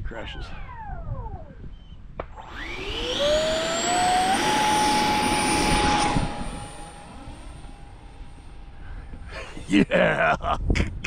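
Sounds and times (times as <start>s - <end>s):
electric ducted fan whine: 0.0s - 10.4s.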